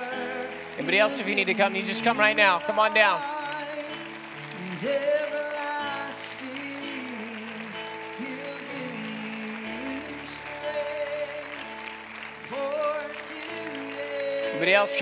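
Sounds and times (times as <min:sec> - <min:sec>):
person singing: 0:00.0 - 0:11.8, 0:12.4 - 0:15.0
congregation applauding: 0:00.0 - 0:15.0
keyboard playing held chords: 0:00.0 - 0:15.0.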